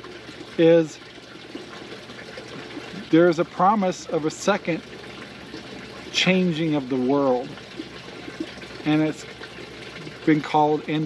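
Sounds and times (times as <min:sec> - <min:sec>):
water trickling: 0:00.0 - 0:11.0.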